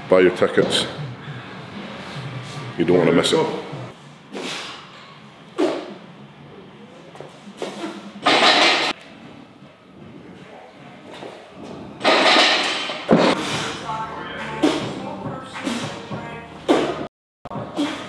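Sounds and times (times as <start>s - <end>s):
loud sharp breaths: 1.1s - 2.7s, 4.1s - 5.0s, 13.3s - 13.8s, 15.6s - 16.1s.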